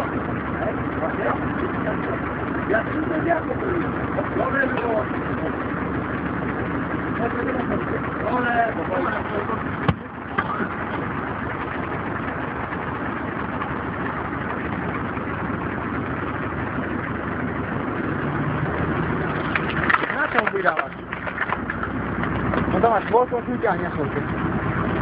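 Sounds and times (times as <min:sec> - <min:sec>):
voices talking: 0:00.0 - 0:12.4, 0:19.7 - 0:24.5
log splitter engine running: 0:00.0 - 0:25.0.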